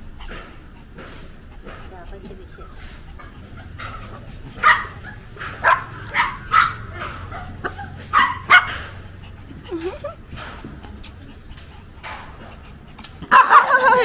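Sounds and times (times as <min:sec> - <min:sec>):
puppies yapping: 0:00.0 - 0:14.0.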